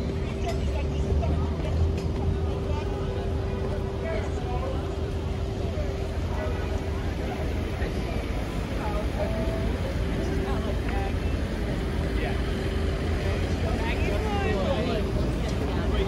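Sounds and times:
car and bus traffic: 0.0s - 16.0s
chatter of pedestrians: 0.0s - 16.0s.

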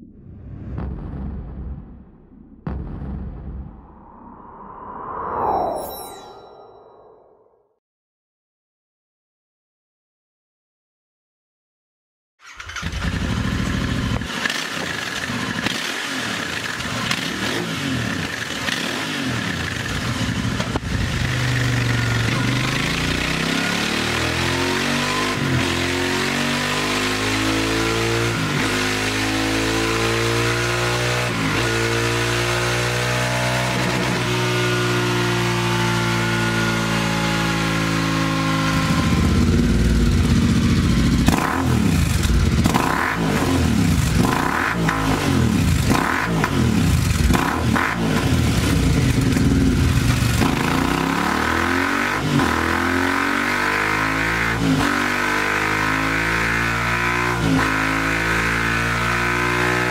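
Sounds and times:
motorcycle engine revving: 12.4s - 59.9s.

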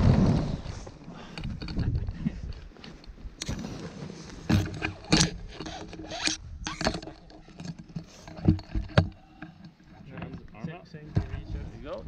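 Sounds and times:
paraglider gear rustling: 0.0s - 10.5s.

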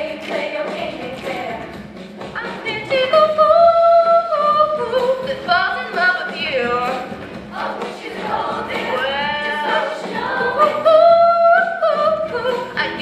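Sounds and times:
girls' choir singing pop song: 0.0s - 13.0s.

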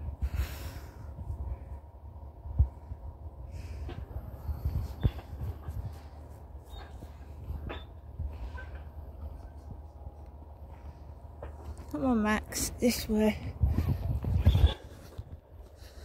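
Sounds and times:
low rumble: 0.0s - 16.0s.

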